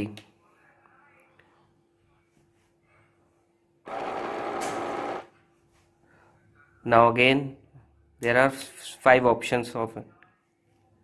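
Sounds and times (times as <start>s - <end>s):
soap dispenser pump running: 3.9s - 5.3s.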